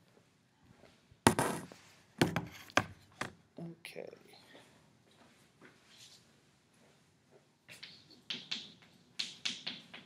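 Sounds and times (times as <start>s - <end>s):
sharp knocks and taps: 7.7s - 10.0s.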